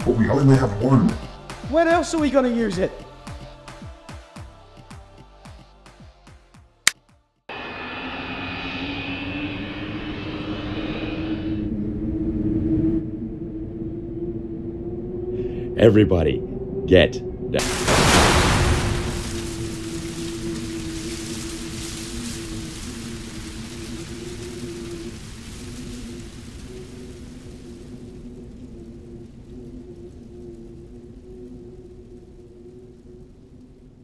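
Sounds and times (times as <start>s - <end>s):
low music drone: 7.5s - 34.0s
explosion with rumble: 17.6s - 30.4s.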